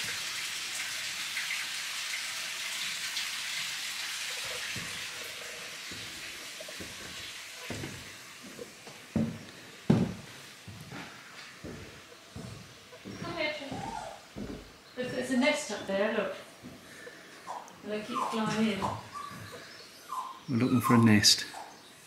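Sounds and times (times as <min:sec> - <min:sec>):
footsteps on wooden stairs: 0:04.4 - 0:16.0, 0:16.6 - 0:17.0, 0:18.4 - 0:19.7.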